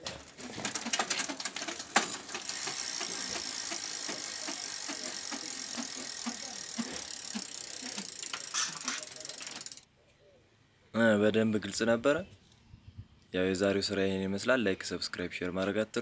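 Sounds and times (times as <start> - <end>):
freewheel ratchet clicking: 0.6 - 9.8.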